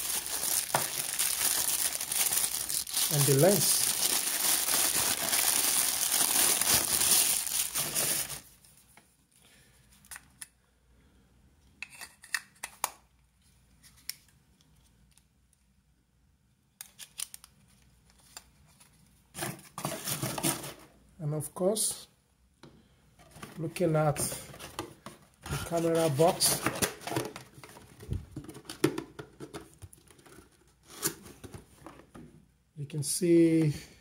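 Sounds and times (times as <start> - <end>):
plastic bag crinkling: 0.0 - 8.6.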